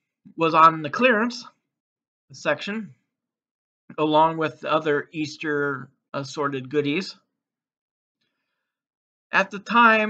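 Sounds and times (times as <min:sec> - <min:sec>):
man speaking: 0:00.3 - 0:01.6, 0:02.3 - 0:03.0, 0:03.9 - 0:07.2, 0:09.3 - 0:10.0
faint breath: 0:08.2 - 0:08.9.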